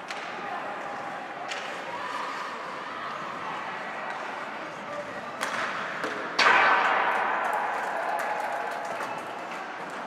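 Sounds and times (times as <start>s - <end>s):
crowd noise: 0.0s - 10.0s
loud bang: 6.4s - 8.0s.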